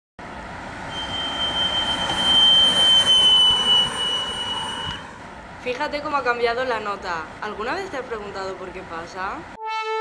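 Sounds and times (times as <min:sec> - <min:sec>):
road noise: 0:00.2 - 0:09.6
high steady note from car: 0:00.7 - 0:05.4.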